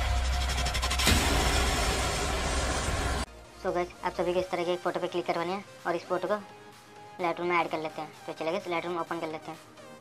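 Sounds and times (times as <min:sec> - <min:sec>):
noisy bass rumble: 0:00.0 - 0:03.3
sudden hit: 0:00.0 - 0:03.3.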